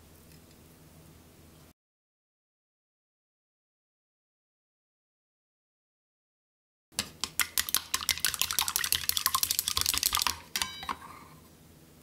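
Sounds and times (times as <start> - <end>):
metal bowl ringing: 10.6 - 11.2.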